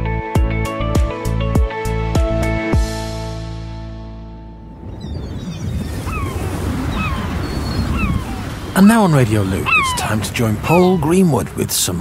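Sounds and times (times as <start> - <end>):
low wind rumble: 4.3 - 12.0
gulls calling: 4.7 - 12.0
surf washing: 5.2 - 12.0.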